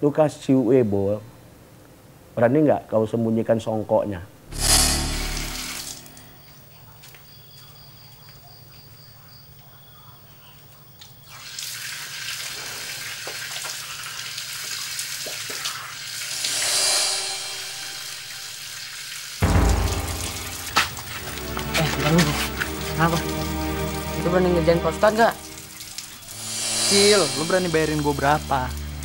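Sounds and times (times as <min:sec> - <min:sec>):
sudden low boom: 0:04.4 - 0:06.4, 0:19.4 - 0:22.2
water running from tap: 0:11.3 - 0:29.0
background music: 0:19.4 - 0:29.0.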